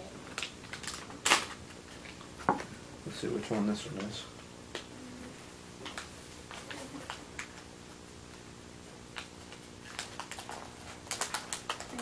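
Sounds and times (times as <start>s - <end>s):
foil wrapper crinkling and tearing: 0.3s - 2.2s, 9.2s - 12.0s.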